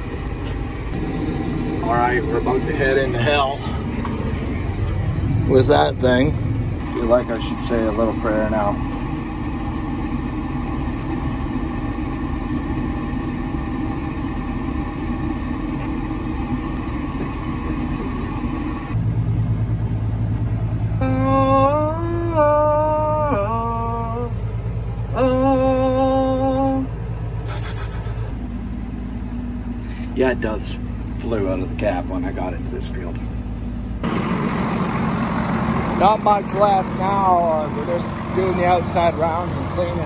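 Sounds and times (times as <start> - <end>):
tractor engine running: 0.0 - 40.0
held pitched tones: 0.9 - 40.0.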